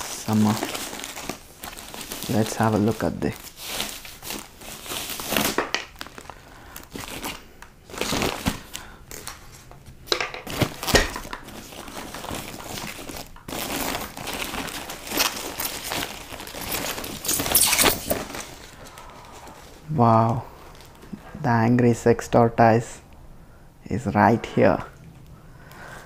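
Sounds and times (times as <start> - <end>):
plastic bag crinkling: 0.0 - 19.9, 20.6 - 21.1.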